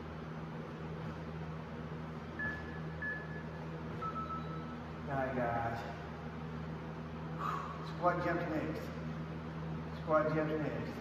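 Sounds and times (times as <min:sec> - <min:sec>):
workout timer beeps: 0:02.4 - 0:04.9.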